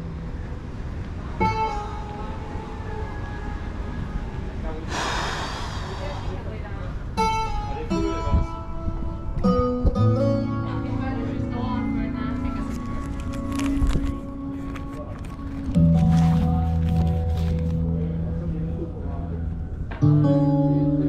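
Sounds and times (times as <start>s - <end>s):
plucked guitar music: 0.0s - 4.6s, 7.2s - 21.0s
indistinct voices: 4.3s - 7.2s
wind rumble on microphone: 12.4s - 20.0s.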